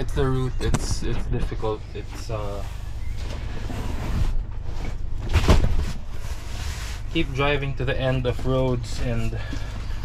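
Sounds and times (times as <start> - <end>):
steady low rumble: 0.0 - 10.0
cardboard parcels thumping: 5.2 - 6.0.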